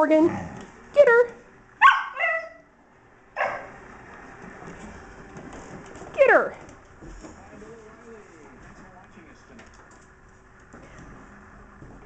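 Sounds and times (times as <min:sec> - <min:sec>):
dog barking: 0:01.8 - 0:02.6, 0:03.4 - 0:03.8
dog yipping: 0:01.8 - 0:02.7, 0:03.4 - 0:03.8.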